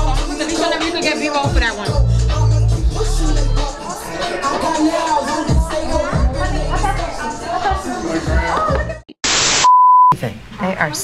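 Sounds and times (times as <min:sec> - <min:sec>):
static white noise burst: 0:09.2 - 0:09.7
high beep: 0:09.6 - 0:10.2.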